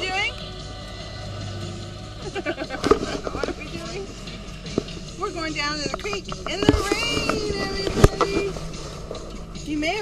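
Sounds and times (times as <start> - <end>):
woman's voice: 0.0 - 0.4, 3.1 - 4.2, 5.1 - 8.6, 9.6 - 10.0.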